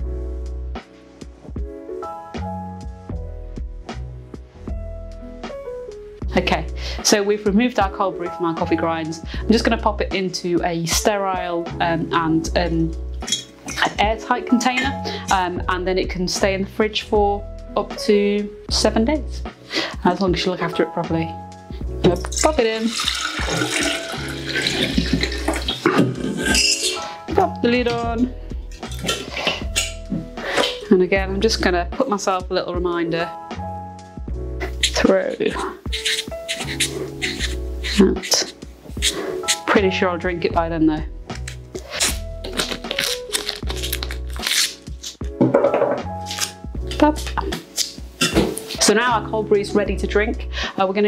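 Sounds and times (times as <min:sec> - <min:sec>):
background music with bass: 0:00.0 - 0:51.0
liquid pouring into a jar: 0:22.7 - 0:26.5
masking tape ripping: 0:34.6 - 0:39.7, 0:41.3 - 0:45.4, 0:46.2 - 0:48.0.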